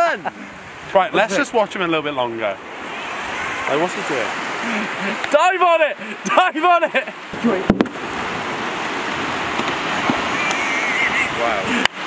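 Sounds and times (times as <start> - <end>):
surf at the shoreline: 0.0 - 12.0
wind: 0.0 - 12.0.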